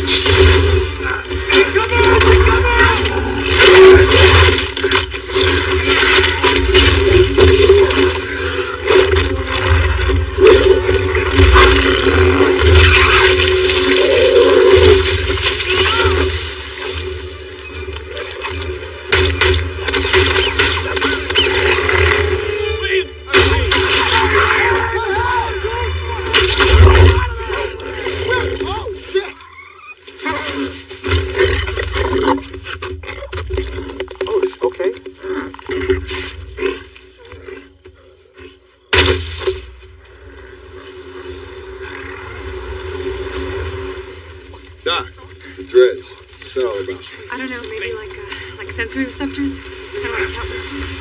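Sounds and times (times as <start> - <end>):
creature growling and roaring: 7.4 - 16.4.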